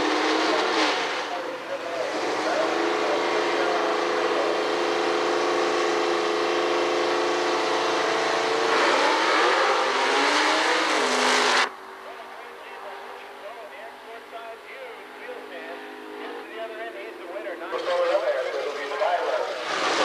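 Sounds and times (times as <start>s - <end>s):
drag car engine revving: 0.0s - 20.0s.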